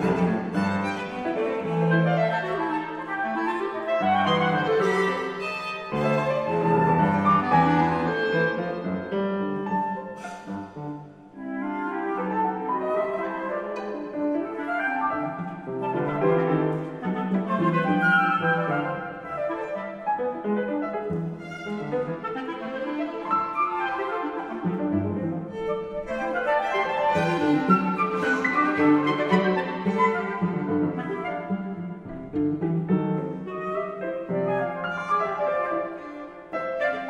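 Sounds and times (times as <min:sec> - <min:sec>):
chamber ensemble playing: 0:00.0 - 0:09.1, 0:11.4 - 0:20.0, 0:21.2 - 0:31.8.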